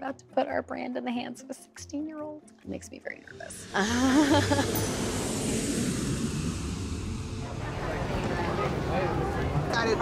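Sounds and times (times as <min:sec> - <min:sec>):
jet airliner taking off: 0:03.4 - 0:10.0.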